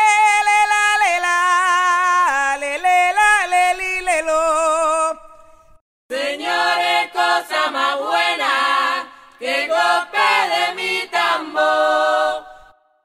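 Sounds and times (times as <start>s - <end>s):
person singing wordless melody: 0.0s - 6.6s.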